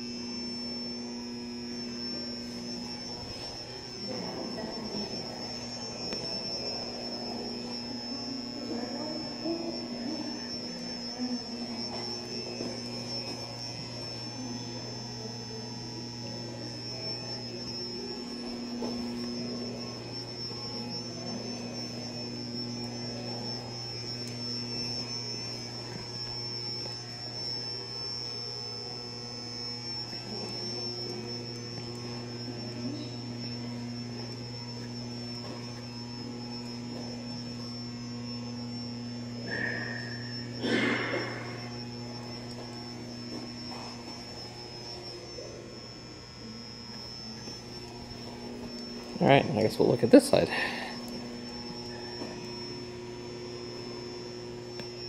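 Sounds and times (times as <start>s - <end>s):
high-pitched whine: 0.0s - 55.0s
low hum: 0.0s - 55.0s.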